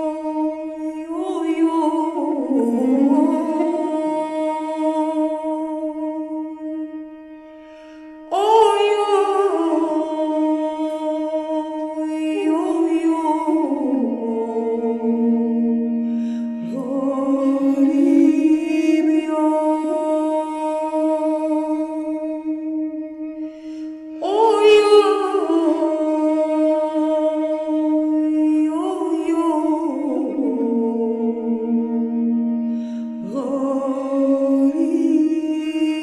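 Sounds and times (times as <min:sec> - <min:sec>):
woman singing long notes: 0:00.0 - 0:06.9, 0:08.3 - 0:22.8.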